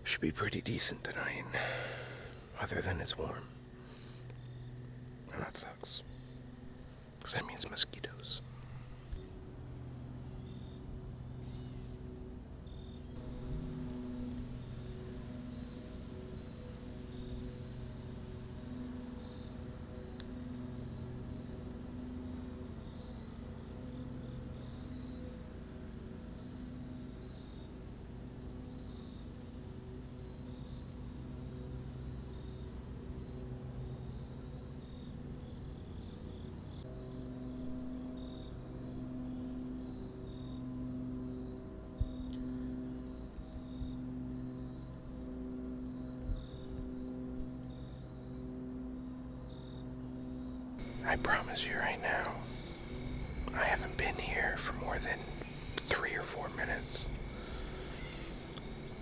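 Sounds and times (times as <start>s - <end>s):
insects trilling: 0.0s - 59.0s
short insect chirp: 0.0s - 59.0s.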